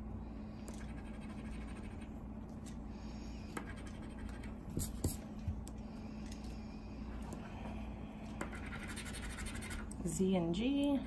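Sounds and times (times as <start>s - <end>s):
coin scratching lottery ticket: 8.5s - 9.8s.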